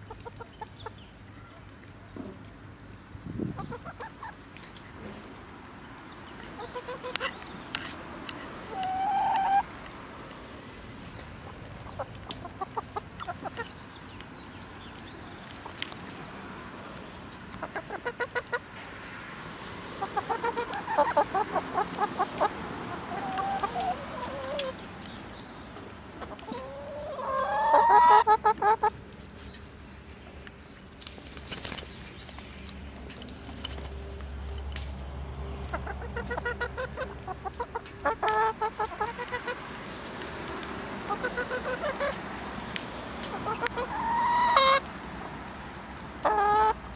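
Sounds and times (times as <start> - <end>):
chickens clucking: 0.0 - 1.6, 3.4 - 5.4, 6.2 - 9.8, 11.2 - 16.1, 17.4 - 18.9, 19.7 - 29.2, 35.2 - 45.4, 46.2 - 46.9.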